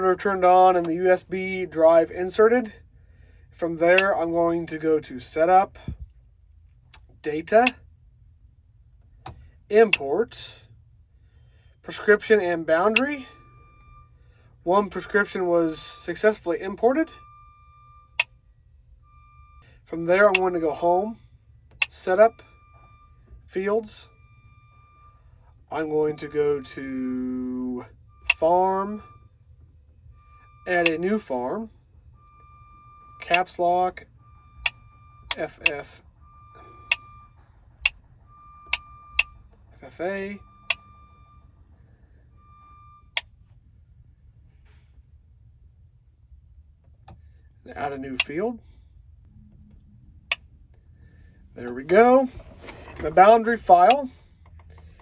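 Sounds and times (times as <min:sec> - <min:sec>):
low steady hum: 0:00.0 - 0:55.0.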